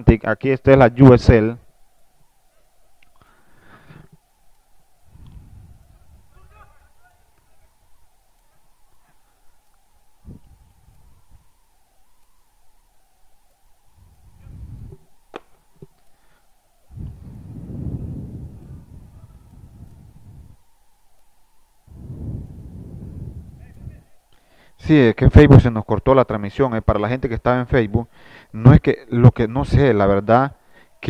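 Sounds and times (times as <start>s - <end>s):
low rumbling on microphone: 5.0s - 6.9s, 14.0s - 15.2s, 16.9s - 20.7s, 21.8s - 24.2s
faint distant voices: 5.9s - 10.3s, 18.3s - 20.6s.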